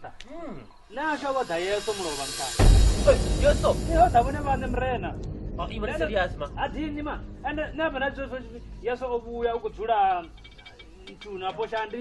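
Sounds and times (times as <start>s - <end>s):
man talking: 0.0s - 10.3s, 10.9s - 12.0s
steady hiss: 0.6s - 12.0s
loud deep rumble: 1.8s - 10.4s.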